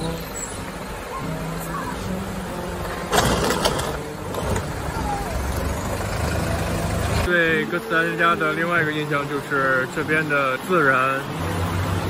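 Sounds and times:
background voices: 0.0s - 12.0s
bus engine droning: 0.0s - 12.0s.

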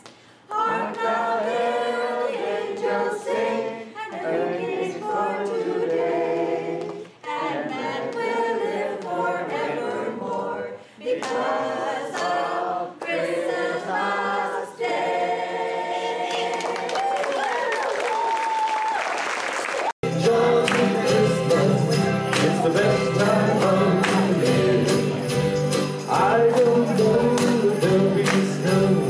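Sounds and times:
women singing unaccompanied: 0.5s - 17.0s.

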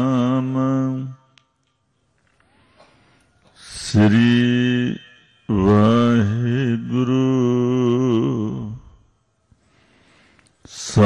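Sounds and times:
man chanting: 0.0s - 1.3s, 3.5s - 9.1s, 10.7s - 11.0s.

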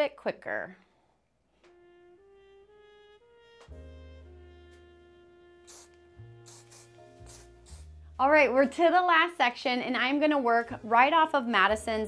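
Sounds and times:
background music of held chords: 1.8s - 12.0s
aerosol hairspray hissing: 5.6s - 8.0s.

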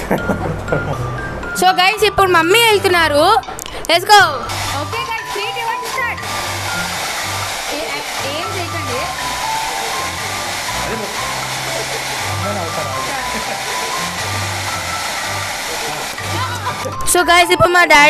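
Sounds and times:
hairdryer blowing: 4.2s - 17.1s
background music with bass line: 8.2s - 17.8s.

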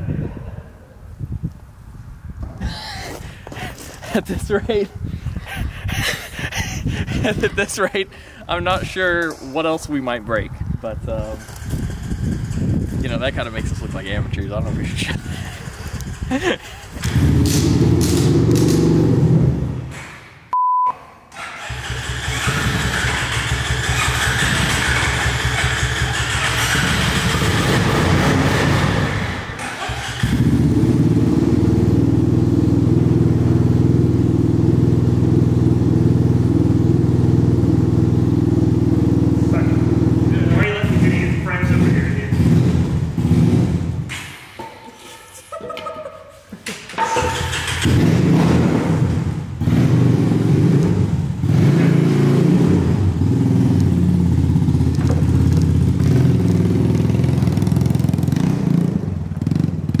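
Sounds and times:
atv engine running: 11.2s - 19.8s, 21.6s - 44.2s, 47.1s - 60.0s.

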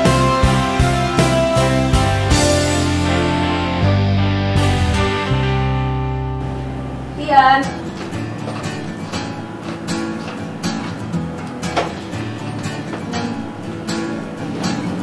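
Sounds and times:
strummed acoustic guitar music: 0.0s - 15.0s
woman calling out: 7.2s - 7.8s.

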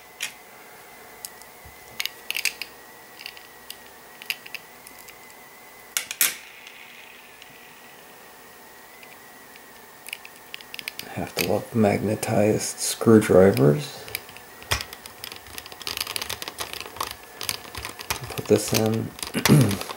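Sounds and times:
screwdriver clicking on plastic: 13.5s - 19.9s.

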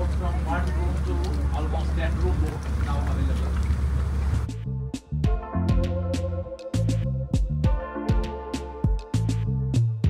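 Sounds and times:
boat engine droning: 0.0s - 4.6s.

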